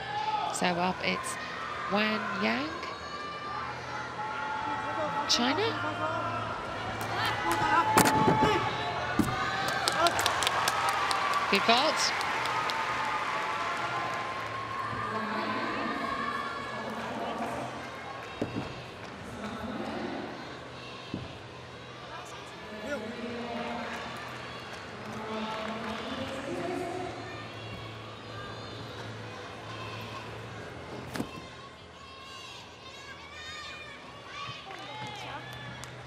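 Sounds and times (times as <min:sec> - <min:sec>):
crowd applauding and cheering: 0:06.5 - 0:20.0, 0:23.4 - 0:27.5.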